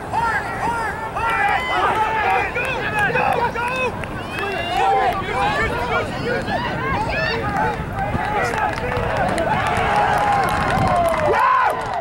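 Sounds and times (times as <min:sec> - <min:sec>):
people shouting: 0:00.0 - 0:11.8
steady outdoor noise: 0:00.0 - 0:12.0.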